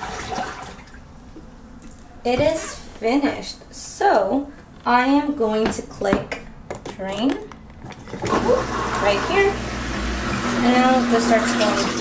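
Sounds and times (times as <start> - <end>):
water sloshing in washing machine tub: 0.0 - 1.3, 2.3 - 3.3, 7.9 - 12.0.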